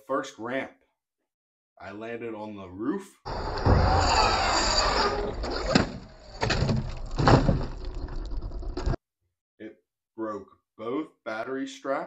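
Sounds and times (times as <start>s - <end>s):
toy truck crashing on ramp: 3.3s - 9.0s.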